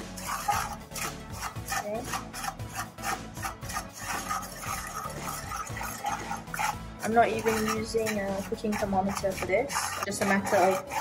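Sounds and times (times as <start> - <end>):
spatula scraping a wok: 0.0 - 11.0.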